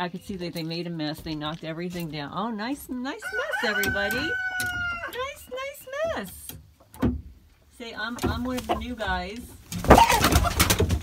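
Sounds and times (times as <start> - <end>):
rooster crowing: 3.2 - 5.2.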